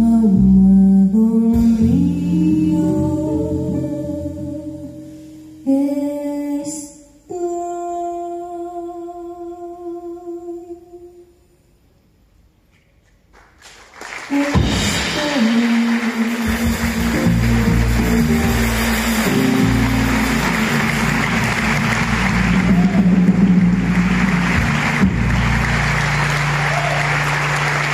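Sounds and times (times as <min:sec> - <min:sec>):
bass and guitar sustained notes: 0:00.0 - 0:06.2, 0:15.8 - 0:27.9
audience applause: 0:13.3 - 0:27.9.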